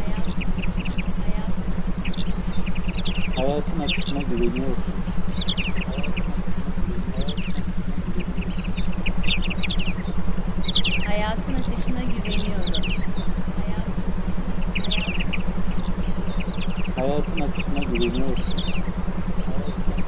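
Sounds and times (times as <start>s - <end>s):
low pulsing hum: 0.0s - 20.0s.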